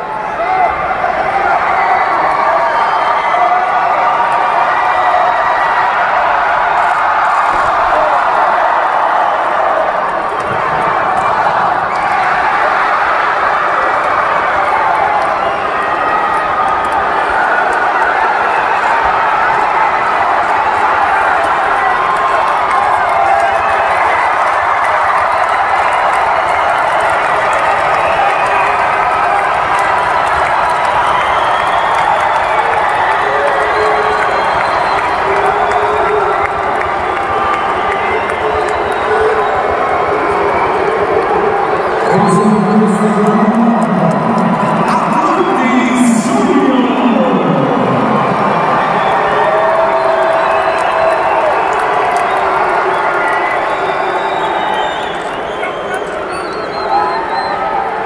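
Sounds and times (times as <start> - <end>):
crowd shouting and cheering: 0.0 - 58.0.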